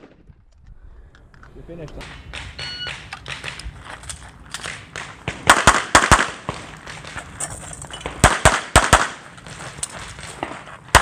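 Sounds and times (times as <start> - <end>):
pistol shots: 4.6 - 7.2, 8.0 - 9.2, 10.3 - 11.0.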